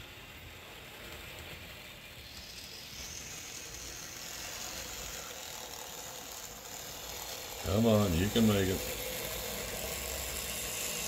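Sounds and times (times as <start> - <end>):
model train motor whirring: 0.0 - 11.0
high-pitched whine: 1.6 - 11.0.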